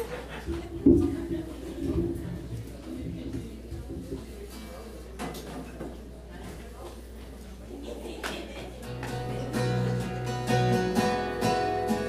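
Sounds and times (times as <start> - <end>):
indistinct background talk: 0.0 - 12.0.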